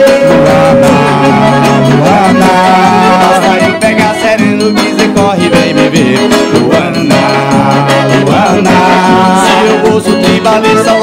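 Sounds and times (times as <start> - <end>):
acoustic guitar: 0.0 - 11.0
bass drum steady beat: 0.0 - 11.0
piano accordion melody: 0.0 - 11.0.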